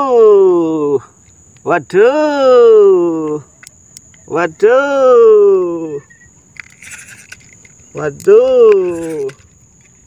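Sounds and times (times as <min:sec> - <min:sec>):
high-pitched insect trill: 0:00.0 - 0:10.0
soft rattle of small ticks: 0:01.0 - 0:02.0, 0:03.2 - 0:04.8, 0:06.0 - 0:10.0.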